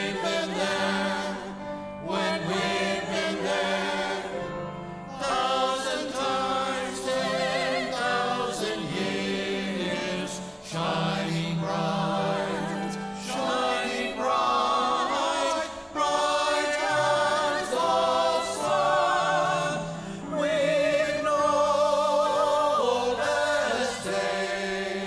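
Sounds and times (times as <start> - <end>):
choir singing in parts: 0.0 - 25.0.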